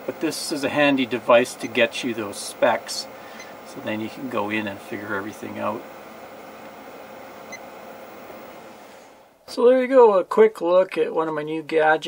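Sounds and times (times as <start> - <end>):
fan whirring: 0.0 - 9.7.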